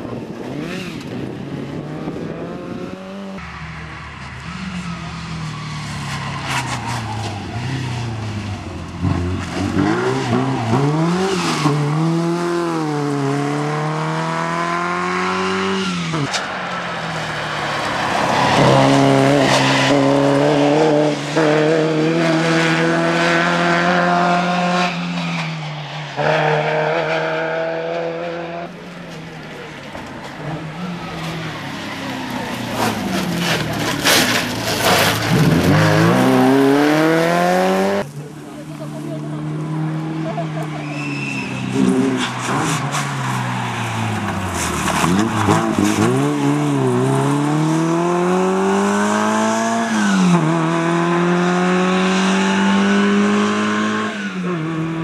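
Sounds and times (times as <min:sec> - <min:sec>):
rally car engine revving: 0:00.0 - 0:25.5, 0:26.1 - 0:55.0.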